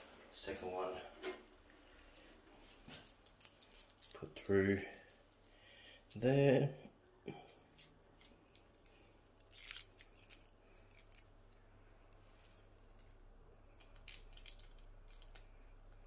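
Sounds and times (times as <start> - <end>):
small metal clicks and rattles: 3.0 - 6.2, 7.5 - 13.2, 13.8 - 16.0.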